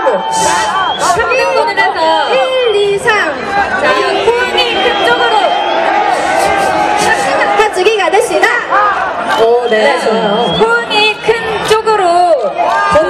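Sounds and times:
crowd babble: 0.0 - 13.0
excited voices calling out: 0.0 - 13.0.

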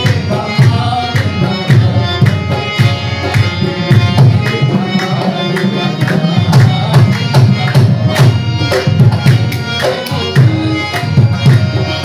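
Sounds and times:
tabla rhythm: 0.0 - 12.0.

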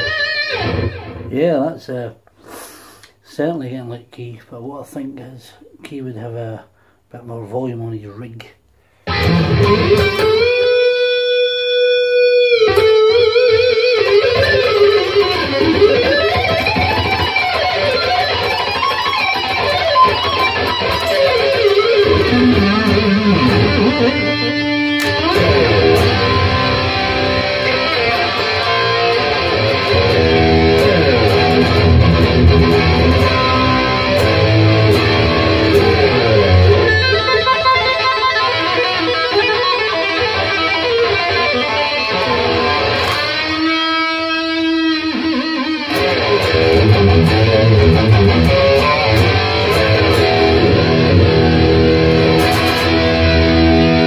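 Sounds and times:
electric guitar rock lead: 0.0 - 1.3, 8.9 - 54.0.

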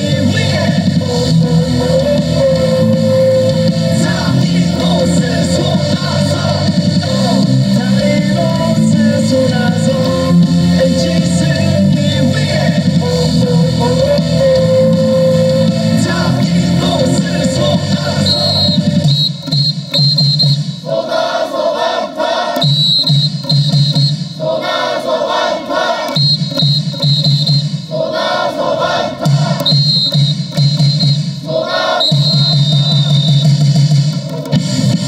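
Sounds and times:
cheer song over loudspeakers: 0.0 - 35.0
crowd chanting shouts: 20.8 - 22.8, 24.4 - 26.2, 27.9 - 29.8, 31.4 - 33.0.

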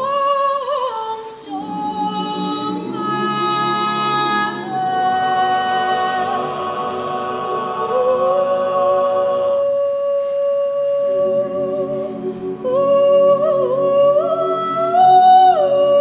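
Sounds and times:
a cappella chorus: 0.0 - 16.0.

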